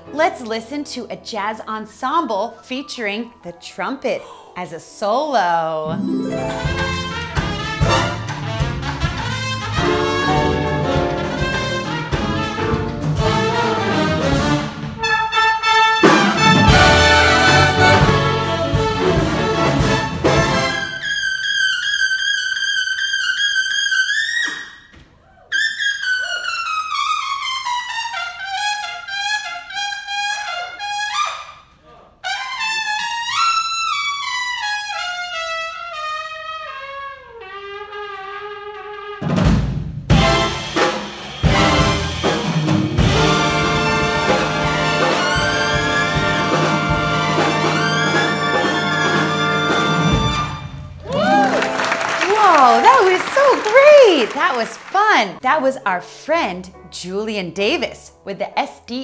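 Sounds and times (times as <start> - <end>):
jazz big band playing: 5.8 - 22.0, 26.9 - 31.2, 32.2 - 58.2
trumpet solo: 5.9 - 24.2, 32.2 - 39.5, 40.1 - 55.0.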